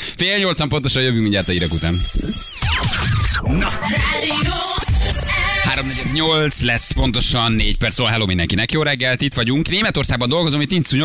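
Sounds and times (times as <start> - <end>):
electronic falling sweep tones: 1.6 - 3.8
music: 2.6 - 7.0.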